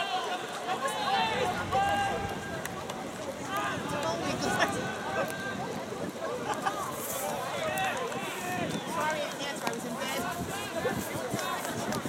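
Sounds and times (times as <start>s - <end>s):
distant players shouting: 0.6s - 5.9s.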